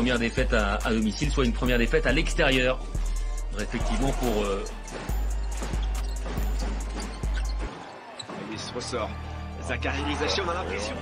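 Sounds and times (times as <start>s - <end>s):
background music bass beat: 0.0s - 7.9s.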